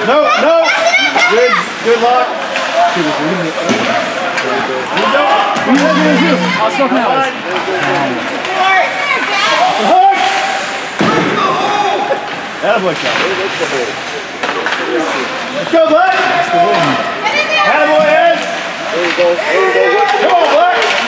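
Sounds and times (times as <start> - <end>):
spectators shouting and chatting: 0.0 - 12.6.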